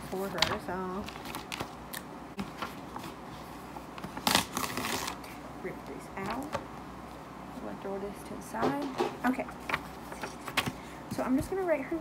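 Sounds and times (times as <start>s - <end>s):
paper rustling: 0.0s - 1.8s, 2.4s - 5.4s.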